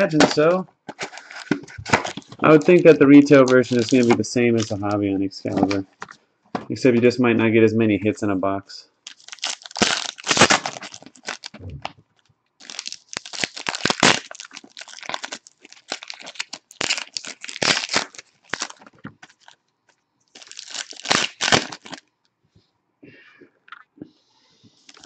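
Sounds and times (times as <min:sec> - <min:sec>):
foil wrappers crinkling and tearing: 0:00.0 - 0:04.9, 0:09.0 - 0:11.6, 0:12.2 - 0:19.6, 0:20.3 - 0:22.0.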